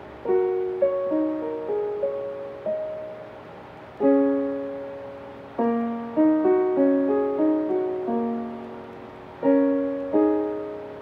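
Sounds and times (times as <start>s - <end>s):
piano played slowly: 0.0s - 11.0s.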